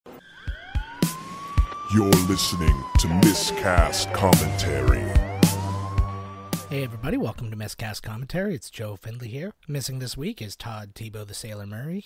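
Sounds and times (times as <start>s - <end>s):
rising synth tone: 1.8s - 7.1s
person speaking: 1.9s - 5.3s.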